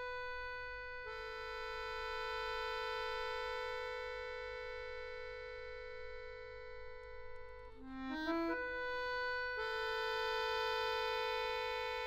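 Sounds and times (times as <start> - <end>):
accordion playing chords: 0.0 - 12.0.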